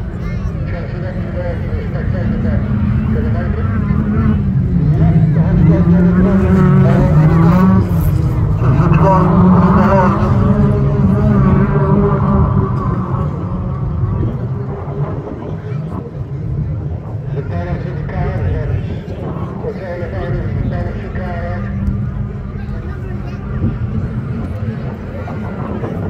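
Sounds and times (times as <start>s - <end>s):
racing car engines revving: 0.0s - 26.0s
voices: 0.0s - 26.0s.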